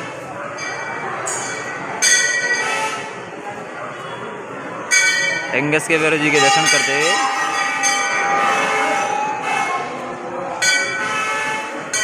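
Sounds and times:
metal bells ringing: 0.6s - 2.8s, 4.9s - 11.3s.

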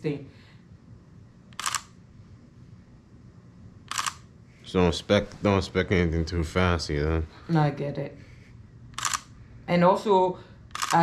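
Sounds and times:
camera shutter click: 1.5s - 2.0s, 3.9s - 4.2s, 9.0s - 9.3s, 10.7s - 11.0s.

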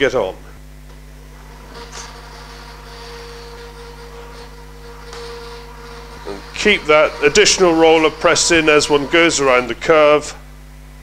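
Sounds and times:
faint high whine: 0.0s - 11.0s
edge bander humming: 0.6s - 11.0s.

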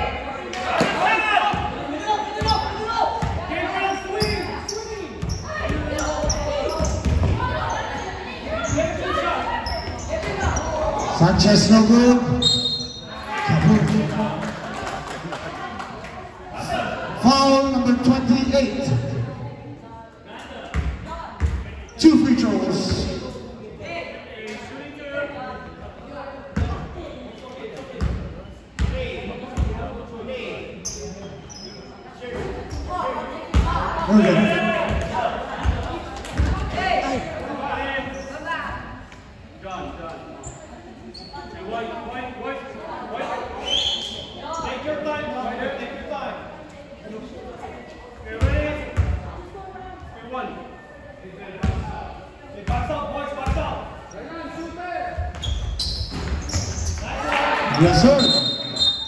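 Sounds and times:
voices talking and calling out: 0.0s - 59.0s
basketball bouncing on gym floor: 5.2s - 7.5s.

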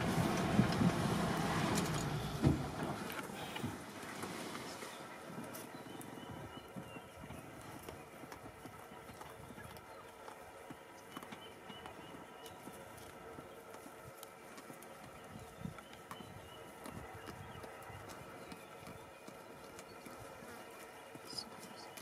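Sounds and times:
warthog cropping grass: 0.0s - 22.0s.

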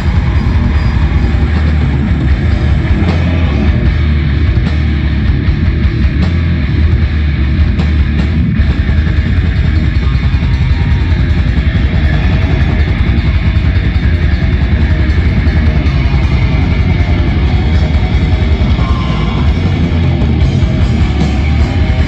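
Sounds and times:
bass guitar: 0.0s - 22.0s
distorted electric guitars: 0.0s - 22.0s
drums: 0.0s - 22.0s.

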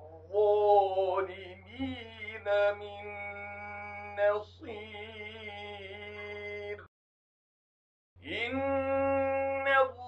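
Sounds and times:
man reciting melodically: 0.0s - 6.9s, 8.2s - 10.0s.

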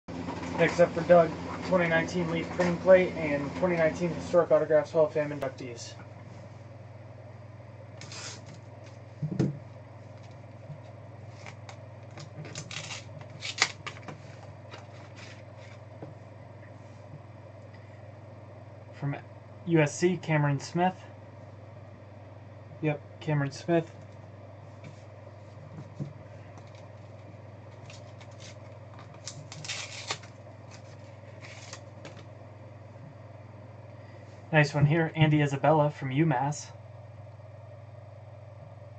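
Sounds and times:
steady low hum: 0.0s - 38.9s
plastic and foil rustling: 11.3s - 15.8s, 26.6s - 32.2s.

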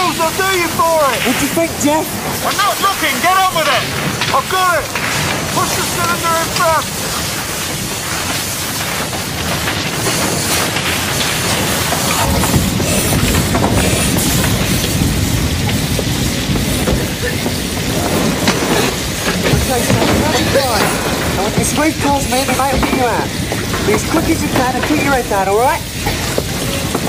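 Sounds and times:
fire roaring and crackling: 0.0s - 27.0s.

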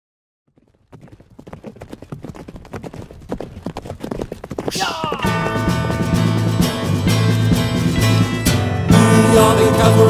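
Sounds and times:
horses' hooves clip-clopping: 0.5s - 8.3s.

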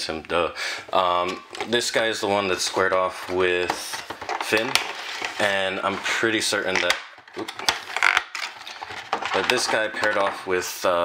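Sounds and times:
plastic packaging crackling: 3.6s - 10.5s
plastic snapping: 6.7s - 10.2s.

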